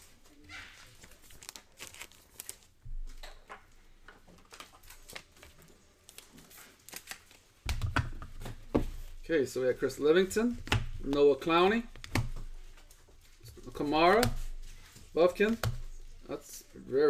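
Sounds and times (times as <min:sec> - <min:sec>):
plastic sleeve rustling: 0:00.0 - 0:03.2, 0:04.3 - 0:16.8
cards being handled: 0:00.1 - 0:03.6, 0:04.2 - 0:16.4.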